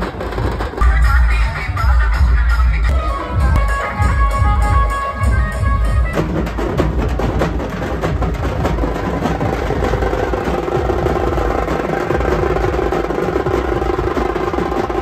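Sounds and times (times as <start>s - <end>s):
fast drumming with sticks: 0.0s - 1.0s, 6.0s - 15.0s.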